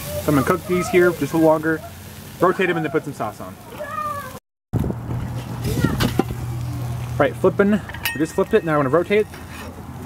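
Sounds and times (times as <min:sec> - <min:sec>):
metal grill lid clanking: 0:05.1 - 0:06.4, 0:07.6 - 0:09.9.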